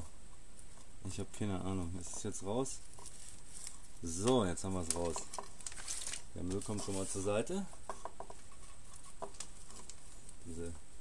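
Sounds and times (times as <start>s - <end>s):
soft rustling: 0.0s - 10.9s.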